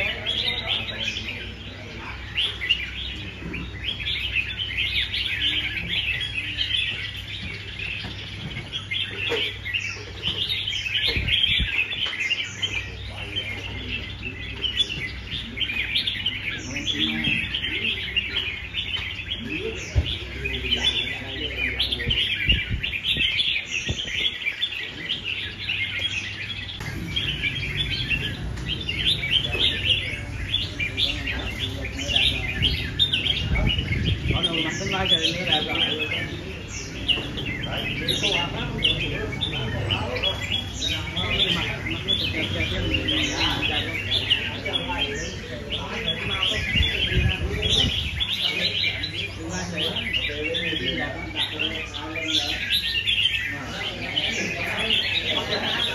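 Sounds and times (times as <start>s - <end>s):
birds chirping and singing: 0.0s - 55.9s.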